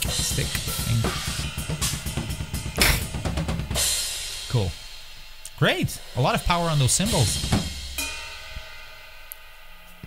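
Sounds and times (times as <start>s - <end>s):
cymbals struck and ringing: 6.0s - 10.0s.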